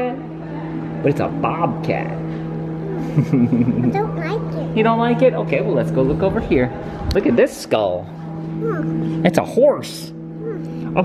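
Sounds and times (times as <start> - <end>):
low hum: 0.0 - 11.0
person laughing: 2.9 - 4.0.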